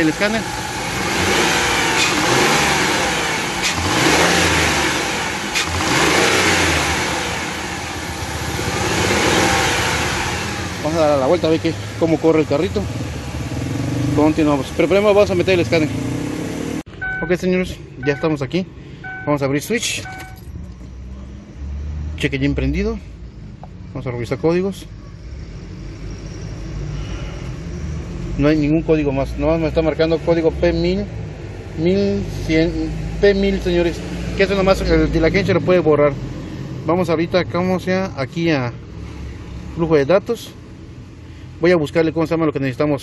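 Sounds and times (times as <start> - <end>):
car engine revving: 0.0 - 19.3, 19.9 - 41.0
car ignition hum: 14.2 - 21.2
short electronic beep: 17.0 - 17.4, 18.0 - 18.4, 19.0 - 19.4, 20.0 - 20.5.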